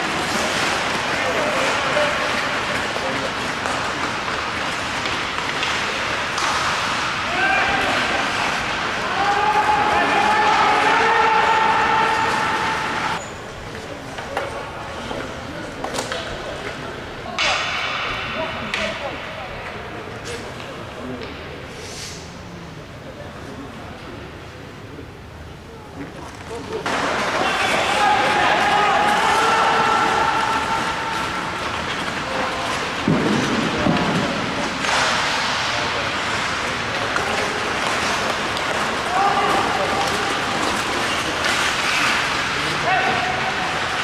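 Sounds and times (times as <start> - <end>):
skates scraping on ice: 0.0 - 13.2, 26.3 - 44.0.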